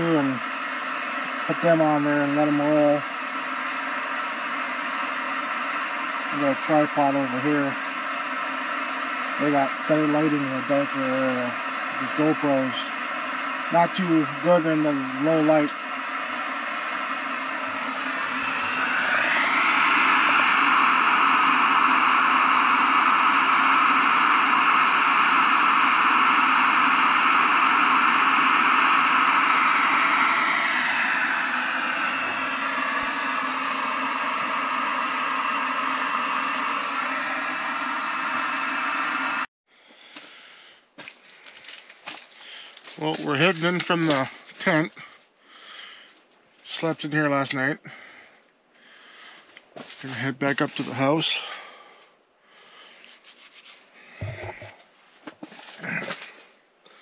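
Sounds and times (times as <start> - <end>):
camp stove burner hissing: 0.0 - 40.8, 42.4 - 54.8.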